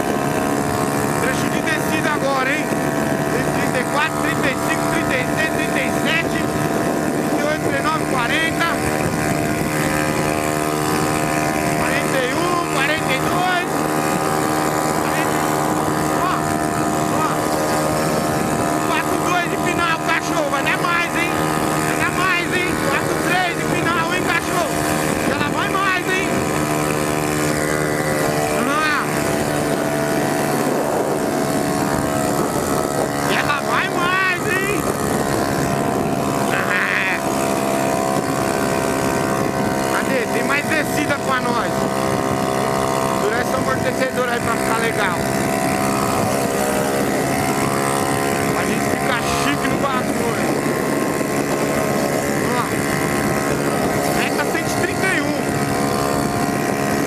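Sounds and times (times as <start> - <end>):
motorcycle engine at high revs: 0.0 - 57.0.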